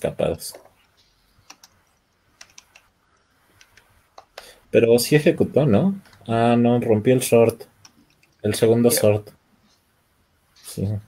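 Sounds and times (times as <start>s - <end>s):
computer keyboard typing: 1.4s - 2.9s.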